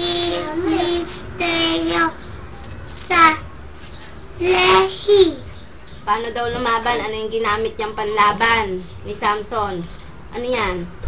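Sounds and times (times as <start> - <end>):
child singing held notes: 0.0 - 2.2.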